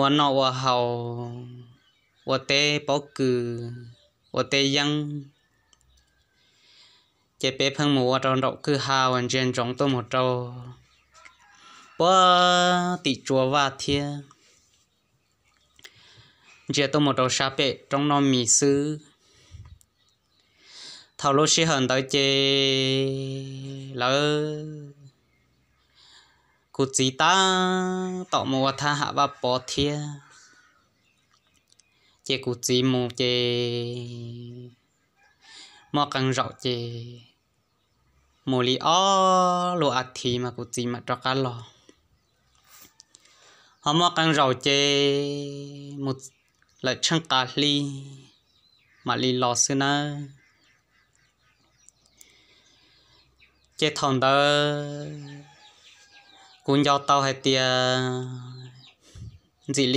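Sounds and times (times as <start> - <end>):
man narrating: 0.0 - 5.4, 7.4 - 10.9, 11.6 - 14.4, 16.7 - 19.2, 20.8 - 25.1, 26.8 - 30.4, 32.3 - 34.8, 35.8 - 37.3, 38.4 - 41.8, 43.8 - 48.3, 49.0 - 50.4, 53.8 - 55.6, 56.5 - 58.8, 59.7 - 59.9
faint clicks: 5.7 - 6.2, 51.8 - 52.4
soft breath: 6.2 - 7.4, 14.3 - 15.0, 15.8 - 16.7, 19.1 - 19.8, 20.4 - 21.2, 25.8 - 26.7, 42.7 - 43.8, 52.1 - 53.5
mouth click: 31.3 - 32.0.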